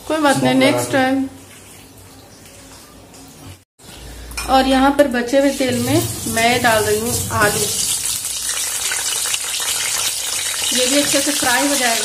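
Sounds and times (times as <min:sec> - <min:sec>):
potatoes sizzling in hot oil: 0:05.5 - 0:12.0.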